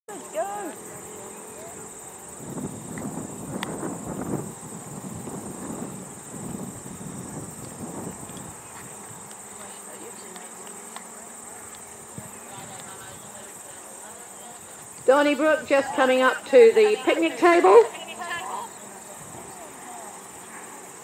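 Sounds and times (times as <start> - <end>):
insects chirring: 0.1 - 21.0.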